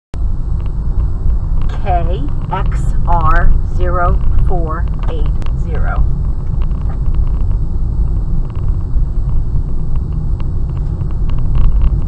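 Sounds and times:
car driving rumble from inside: 0.2 - 12.0.

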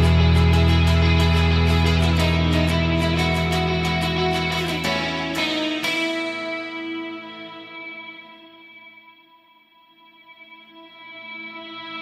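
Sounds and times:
rock song: 0.0 - 8.0
guitar chord ringing out: 0.0 - 9.4.

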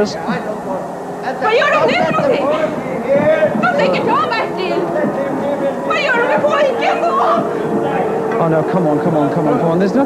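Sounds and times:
voices talking in alarm: 0.0 - 10.0.

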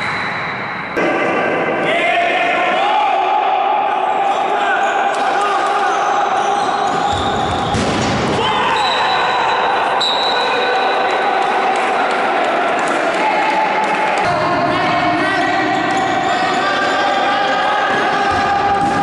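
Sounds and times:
players shouting: 1.0 - 19.0.

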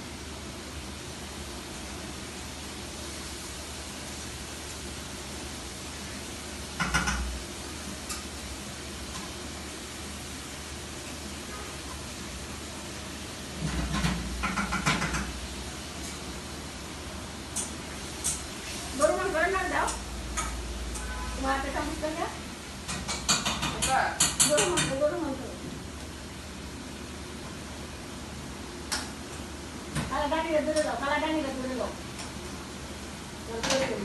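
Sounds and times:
food sizzling in a pan: 0.0 - 34.0.

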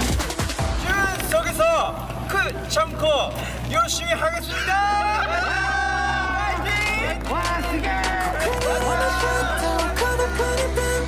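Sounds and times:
young men speaking: 0.7 - 10.8.

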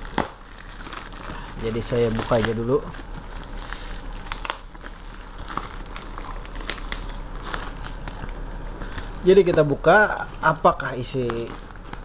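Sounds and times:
plastic wrapping crinkling: 0.0 - 12.0
steady low hum: 0.0 - 12.0.

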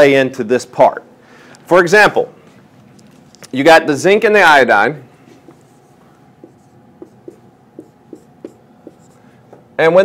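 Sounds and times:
handwriting taps and strokes: 5.3 - 9.7.

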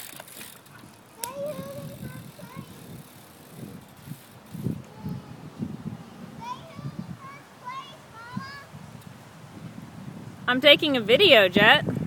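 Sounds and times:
bicycles rolling over concrete: 0.0 - 9.2.

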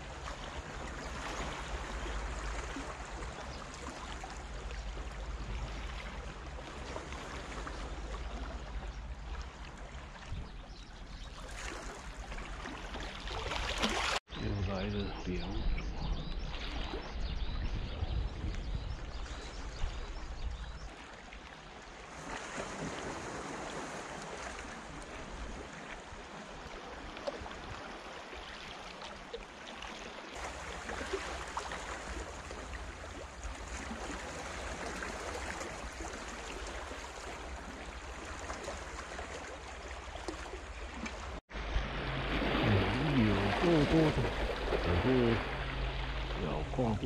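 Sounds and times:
small waves lapping against rocks: 0.0 - 14.3, 19.1 - 46.9.

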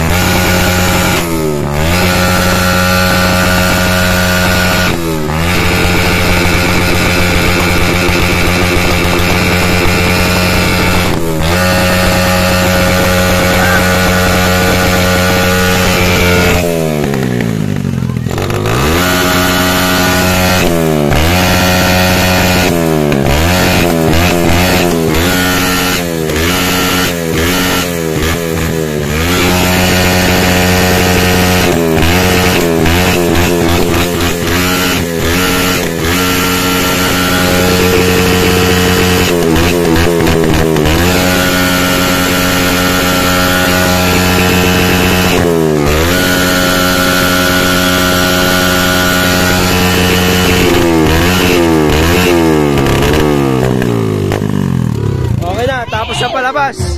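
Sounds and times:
motorcycle engine revving hard: 0.0 - 56.9.

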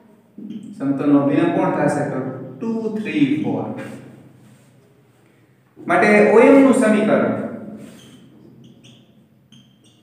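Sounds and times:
whiteboard marker squeaking: 7.8 - 10.0.

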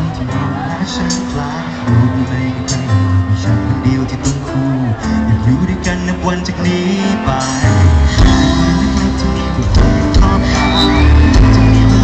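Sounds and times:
drums: 0.0 - 12.0
male singer: 0.0 - 12.0.

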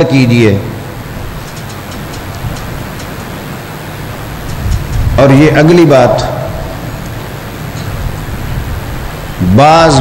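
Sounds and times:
steady background noise: 0.0 - 10.0
faint ticks: 1.4 - 3.4.

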